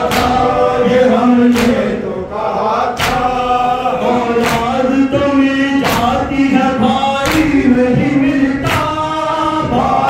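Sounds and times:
men chanting a lament: 0.0 - 10.0.

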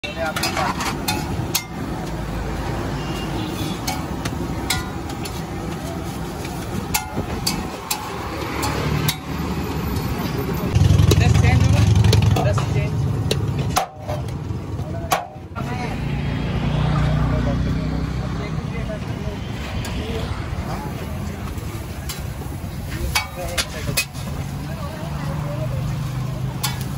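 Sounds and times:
vehicle engine humming: 0.0 - 26.9.

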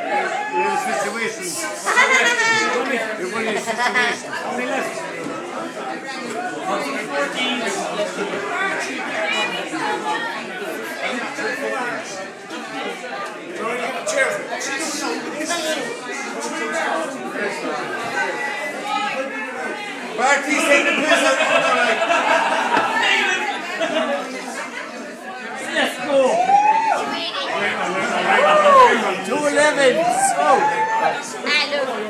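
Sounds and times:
people chattering: 0.0 - 32.0.

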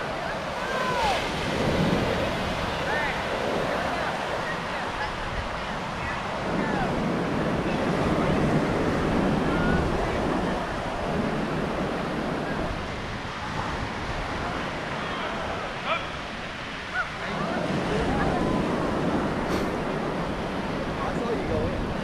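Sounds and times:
small waves breaking on beach: 0.0 - 22.0
wind on microphone: 0.0 - 22.0.

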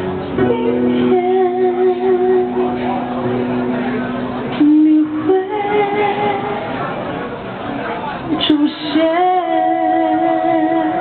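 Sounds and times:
electric keyboard: 0.0 - 7.8
woman singing: 0.3 - 3.0, 4.5 - 6.7, 8.3 - 11.0.

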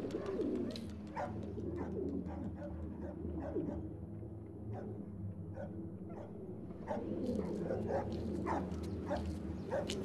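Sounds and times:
pigeons cooing: 0.0 - 3.7, 6.8 - 8.6.

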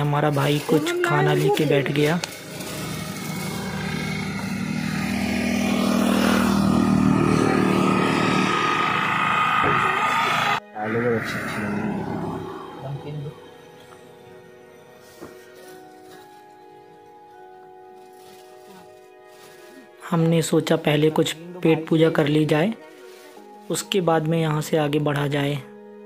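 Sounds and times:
auto-rickshaw driving by: 0.8 - 14.6.

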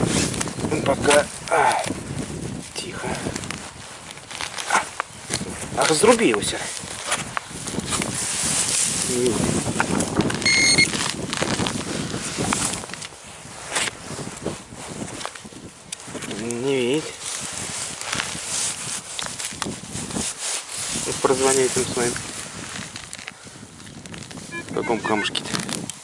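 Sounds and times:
soil and roots crunching: 0.0 - 13.2
short electronic beep: 10.4 - 10.9, 24.5 - 25.4.

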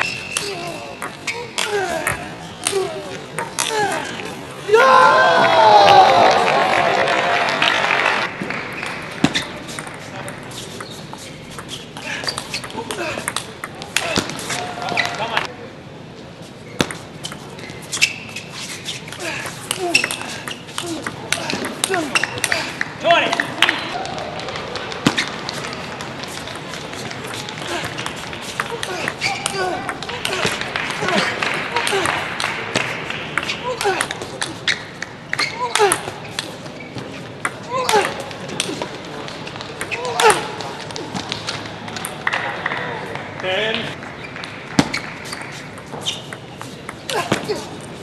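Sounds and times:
murmur of voices: 18.6 - 45.8.

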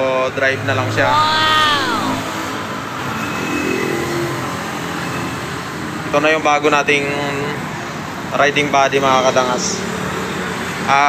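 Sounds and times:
street traffic noise: 9.1 - 10.9.

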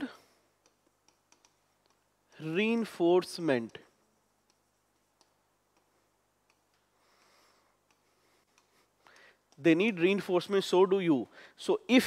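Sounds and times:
marker clicking on whiteboard: 0.6 - 6.9, 7.8 - 10.1.

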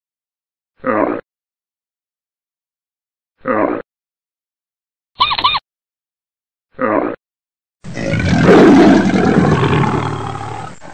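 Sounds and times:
cartoon dinosaur roar: 7.9 - 10.9.

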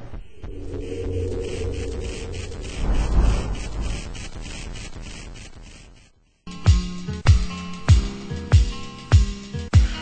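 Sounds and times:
low rumble: 0.0 - 5.2
noisy fluttering texture: 0.0 - 6.3.

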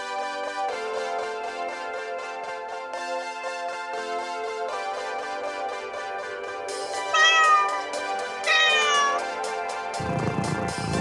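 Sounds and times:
light background music: 0.0 - 11.0
cat meowing: 7.1 - 9.3.

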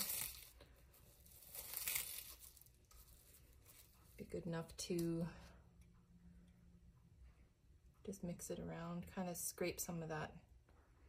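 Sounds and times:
plastic cling wrap crinkling: 0.0 - 4.2.

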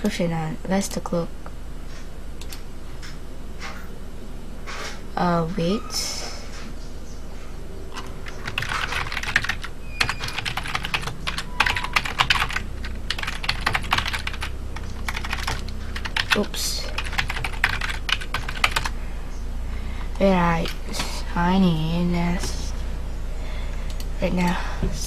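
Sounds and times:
steady low hum: 0.0 - 25.0
computer keyboard typing: 7.9 - 19.0.

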